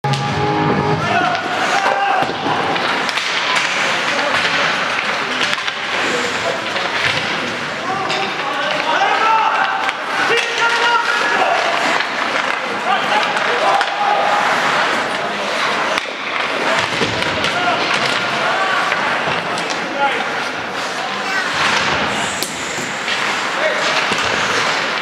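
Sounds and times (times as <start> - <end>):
players shouting: 0.0 - 4.5, 7.8 - 21.9
sticks and puck clacking: 0.1 - 25.0.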